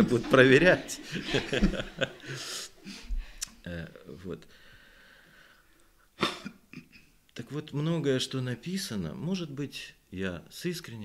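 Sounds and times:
person coughing: 6.2 - 7.1.

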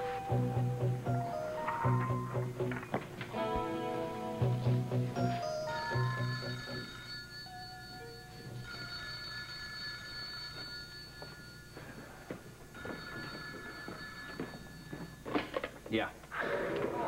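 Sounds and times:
desk telephone ringing: 0.0 - 2.9, 5.2 - 12.0, 12.7 - 15.4.

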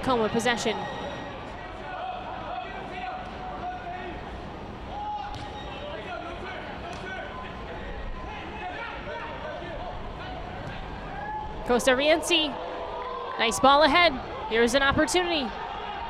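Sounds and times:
distant shouts: 0.1 - 4.3, 4.9 - 16.0.

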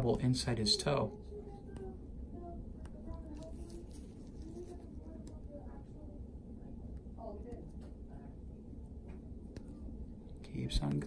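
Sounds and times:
low steady hum: 0.0 - 11.0
faint indistinct voices: 1.1 - 8.8.

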